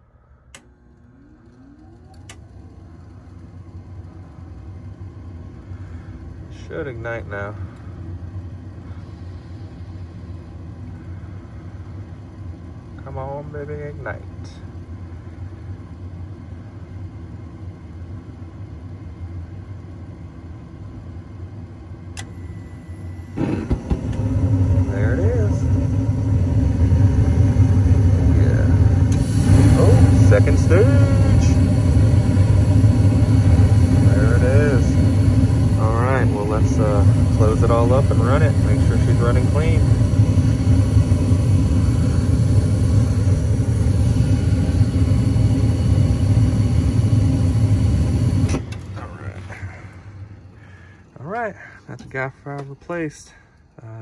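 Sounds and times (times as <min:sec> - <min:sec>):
furnace burners roaring: 0:00.0 - 0:54.0
furnace draft inducer rumble: 0:00.5 - 0:16.8, 0:23.3 - 0:54.0.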